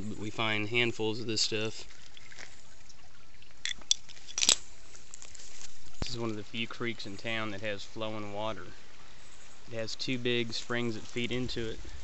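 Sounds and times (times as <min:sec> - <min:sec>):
creek water trickling: 0:00.0 - 0:12.0.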